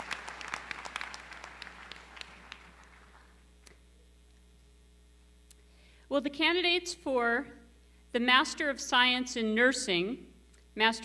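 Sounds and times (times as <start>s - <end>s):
audience applause: 0.0s - 3.4s.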